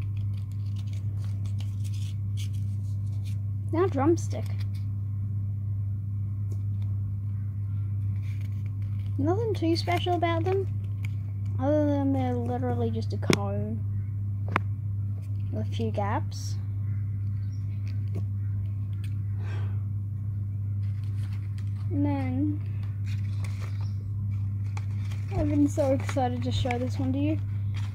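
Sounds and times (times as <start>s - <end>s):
low hum: 0.0s - 27.9s.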